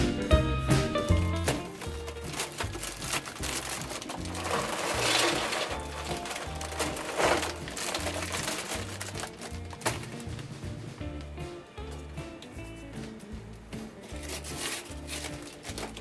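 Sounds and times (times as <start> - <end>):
background music with bass line: 0.0 - 16.0
charcoal clattering into metal starter: 1.0 - 10.6, 14.0 - 16.0.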